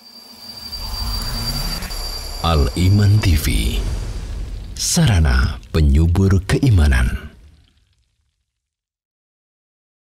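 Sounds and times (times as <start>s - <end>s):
thin steady high tone: 0.0s - 7.5s
low rumbling whoosh: 0.6s - 7.8s.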